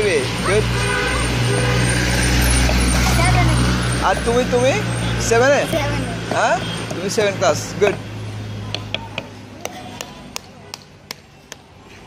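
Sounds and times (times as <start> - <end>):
large vehicle engine humming: 0.0 - 11.8
road traffic: 0.0 - 12.0.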